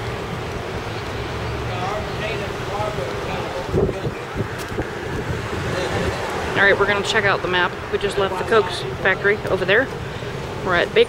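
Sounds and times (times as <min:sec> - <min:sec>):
street traffic: 0:00.0 - 0:11.0
wind buffeting microphone: 0:00.0 - 0:11.0.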